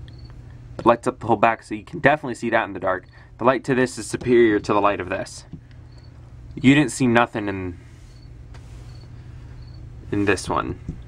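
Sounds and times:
steady low hum: 0.0s - 11.0s
faint high-pitched chirp: 5.9s - 6.2s, 8.9s - 9.8s.

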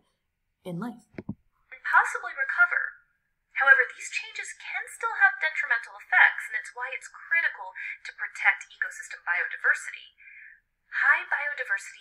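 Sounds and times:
narrator speaking: 0.6s - 2.6s.

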